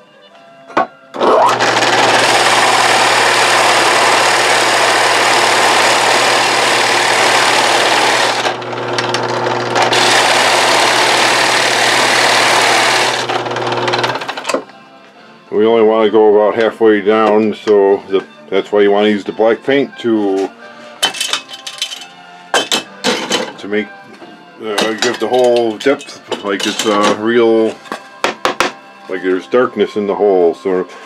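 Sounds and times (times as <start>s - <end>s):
drill bit cutting wood: 1.2s - 14.6s
drill press motor hum: 1.2s - 14.7s.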